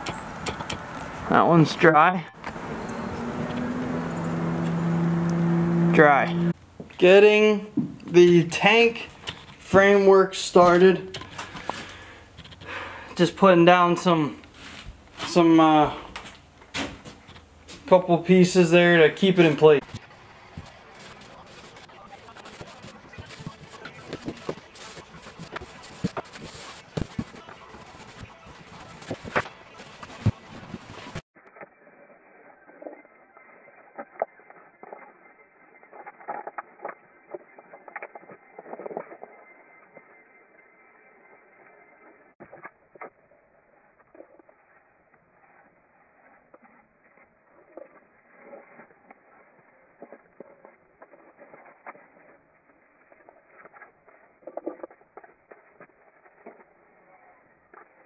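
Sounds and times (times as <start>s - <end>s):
sharp clicks and knocks: 0.0s - 1.1s.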